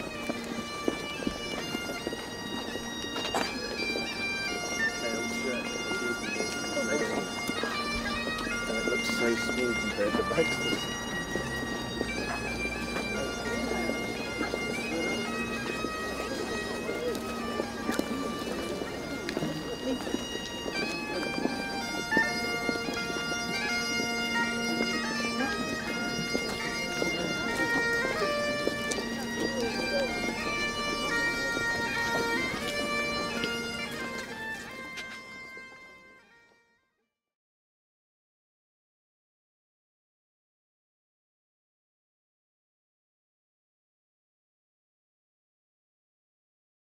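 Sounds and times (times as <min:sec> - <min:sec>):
bagpipes playing a tune: 0:00.0 - 0:36.9.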